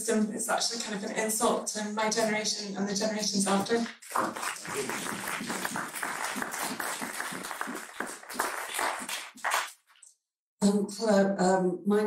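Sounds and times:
audience applauding: 3.9s - 9.8s.

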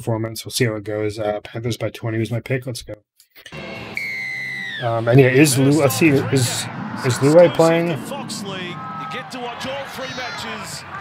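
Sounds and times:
high tone gliding downward: 3.6s - 9.9s
crowd noise: 4.6s - 11.0s.

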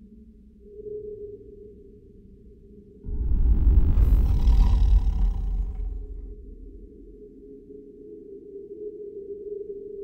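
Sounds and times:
deep rumbling boom: 3.1s - 7.5s.

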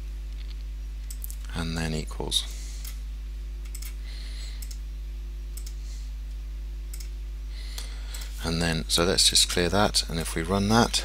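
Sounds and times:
steady low hum: 0.0s - 11.0s
computer mouse clicking: 3.6s - 4.0s, 5.6s - 5.8s, 6.9s - 7.1s.

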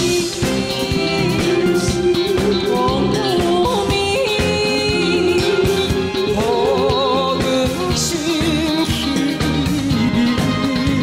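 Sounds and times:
woman singing with vibrato: 0.0s - 9.0s
live band accompaniment: 0.0s - 11.0s.

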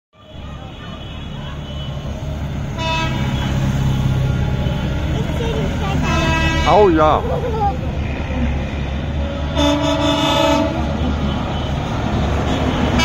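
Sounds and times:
tractor engines rumbling: 0.2s - 13.0s
vehicle horn: 0.3s - 4.9s, 5.9s - 7.0s, 9.2s - 13.0s.

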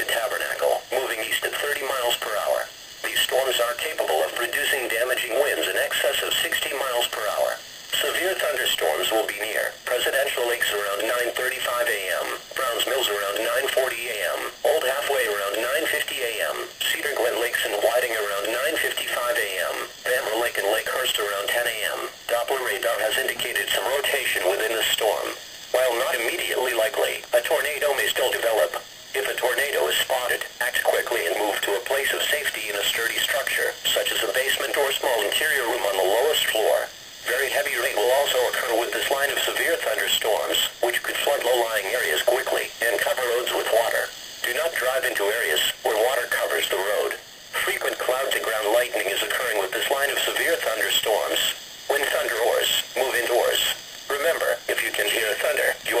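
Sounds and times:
radio hiss: 0.0s - 56.0s
voice over small radio speaker: 0.0s - 56.0s.

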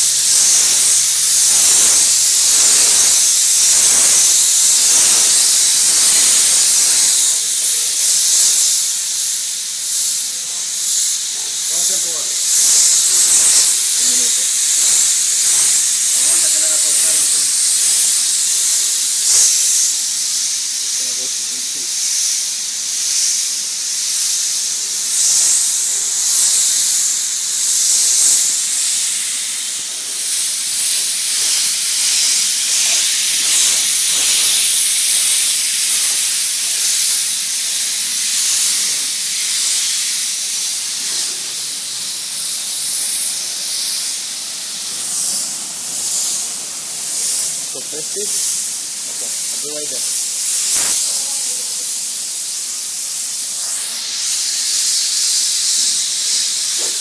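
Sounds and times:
pressurized spray hissing: 0.0s - 57.0s.

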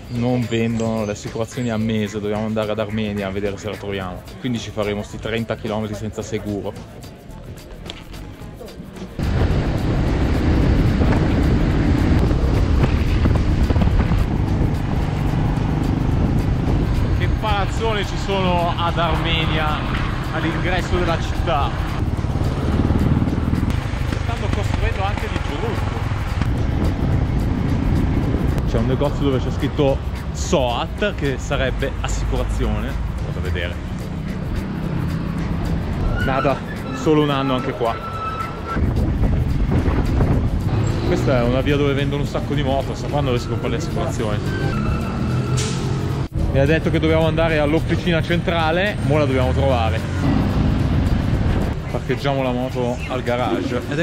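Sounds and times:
motorcycle engine rumble: 7.6s - 42.7s
wind rush on microphone: 9.2s - 32.0s, 37.7s - 42.8s, 49.5s - 54.0s.

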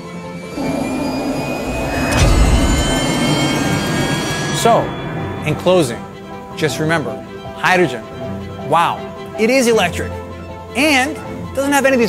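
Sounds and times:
music: 0.0s - 12.0s
electric car whine: 0.5s - 6.4s.

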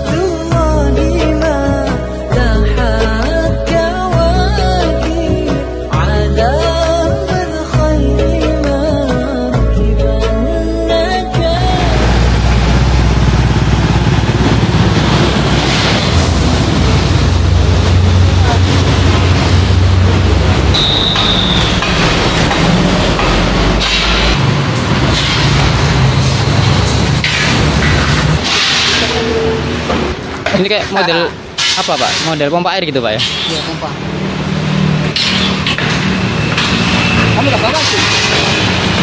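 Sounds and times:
truck engine drone: 11.3s - 30.6s, 32.7s - 39.0s
road traffic rushing: 11.6s - 39.0s.

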